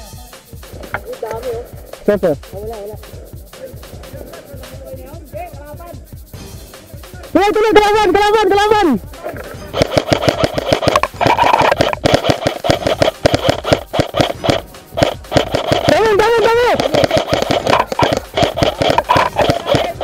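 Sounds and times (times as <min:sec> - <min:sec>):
music: 0:00.0 - 0:20.0
airsoft rifles firing: 0:07.8 - 0:20.0.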